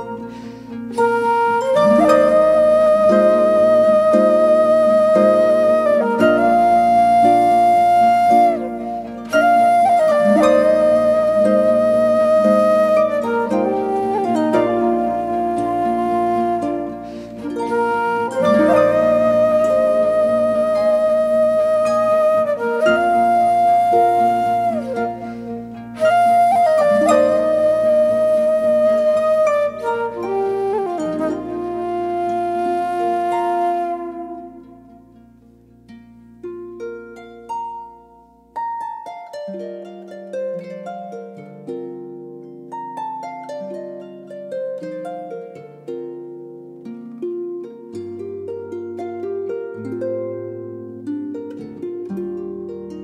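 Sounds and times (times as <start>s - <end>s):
wooden flute long notes: 0.0s - 35.2s
plucked harp: 0.0s - 53.0s.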